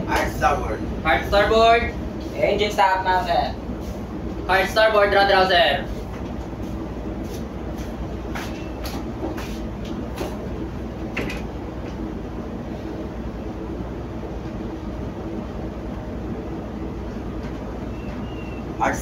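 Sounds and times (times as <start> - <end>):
ship engine rumble: 0.0 - 19.0.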